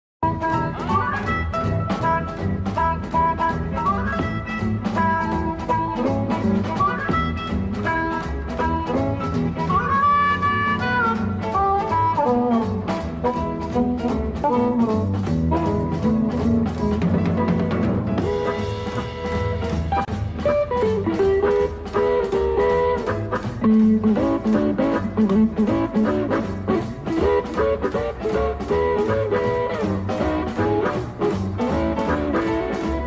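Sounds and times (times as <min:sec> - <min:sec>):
blues band playing boogie: 0:00.2 - 0:33.0
sliding lead guitar line: 0:00.2 - 0:33.0.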